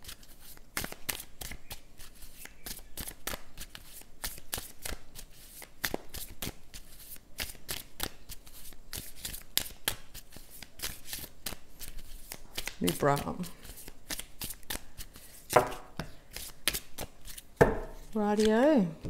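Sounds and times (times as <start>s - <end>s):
cards being shuffled: 0.0s - 19.0s.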